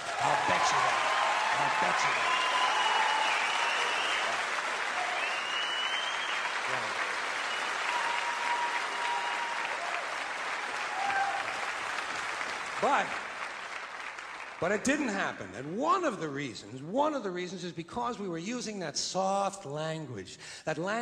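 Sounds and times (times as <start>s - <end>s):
audience applauding: 0.0s - 15.3s.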